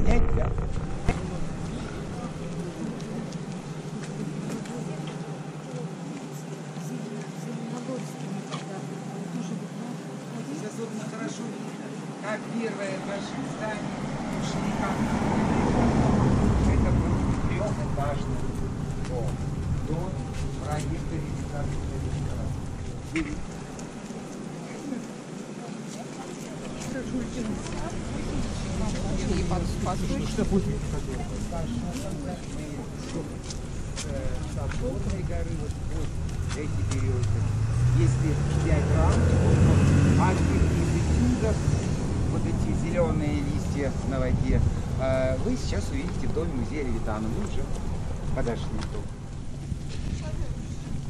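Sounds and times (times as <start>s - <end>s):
car driving past: 0.0s - 4.5s, 12.8s - 24.4s, 26.7s - 49.7s
ship diesel engine humming: 0.0s - 6.2s, 12.8s - 25.6s, 26.5s - 51.0s
passengers chattering: 0.0s - 38.2s.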